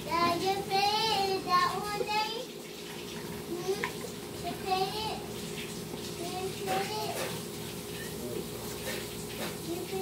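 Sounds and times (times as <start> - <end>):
water running from tap: 0.0 - 10.0.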